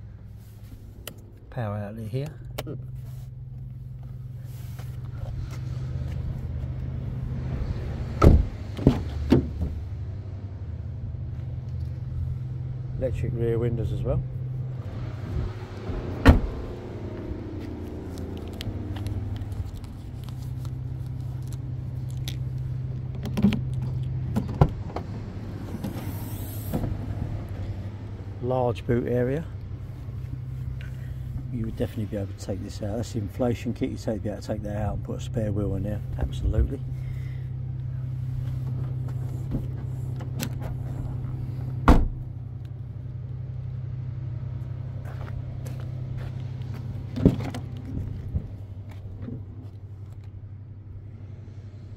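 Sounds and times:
car door shutting thump: 8.2s - 9.8s, 16.2s - 16.7s, 41.8s - 42.3s
tailgate unlatching knocks: 8.2s - 9.8s, 16.2s - 16.7s, 41.8s - 42.3s.

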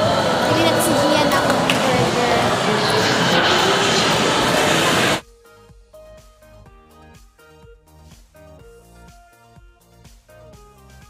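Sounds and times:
indoor mall ambience: 0.0s - 5.2s.

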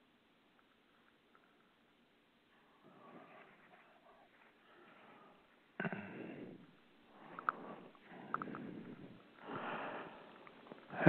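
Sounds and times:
man breathing and sniffing: 2.6s - 11.0s
faint small clicks: 7.3s - 7.6s, 8.3s - 8.7s.

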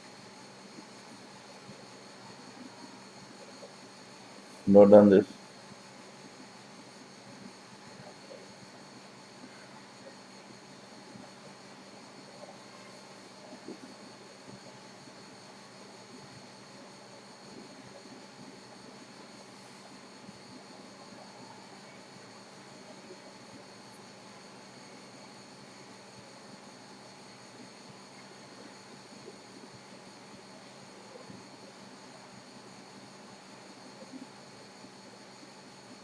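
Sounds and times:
thin high whine: 0.0s - 31.9s
background hiss: 0.0s - 36.0s
faint electrical hum: 0.0s - 36.0s.

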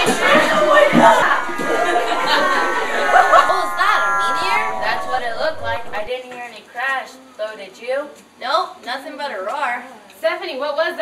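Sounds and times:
children shouting and chattering: 0.0s - 6.1s
held musical tone dipping: 0.0s - 6.1s.

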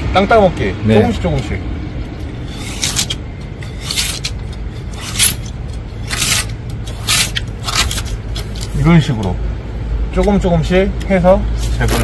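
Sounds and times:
scraper blade on glass: 2.4s - 8.8s.

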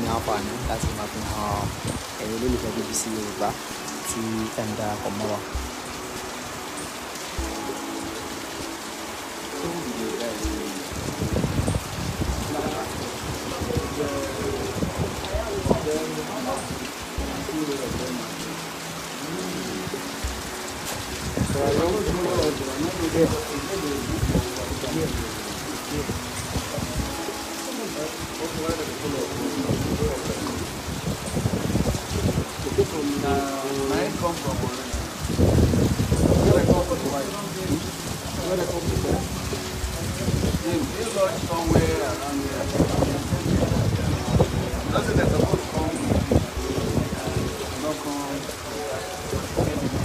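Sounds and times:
steady rain falling: 0.0s - 50.0s.

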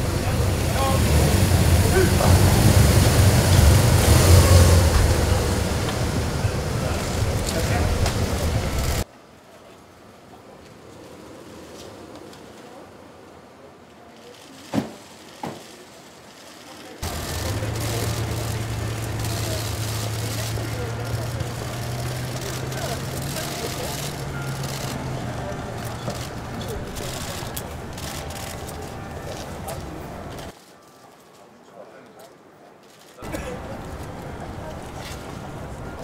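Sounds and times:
indistinct voices: 0.0s - 9.0s, 16.6s - 30.5s
low engine hum: 0.0s - 9.0s, 17.0s - 30.5s.

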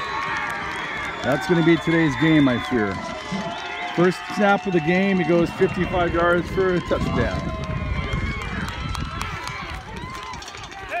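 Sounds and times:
loud shout: 0.0s - 11.0s.

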